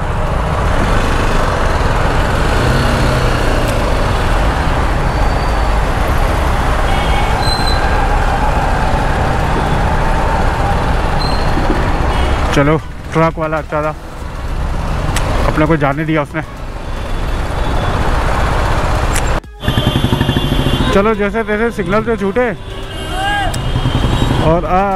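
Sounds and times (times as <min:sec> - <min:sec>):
wind and road noise: 0:00.0 - 0:24.9
motorcycle engine rumble: 0:19.4 - 0:22.4.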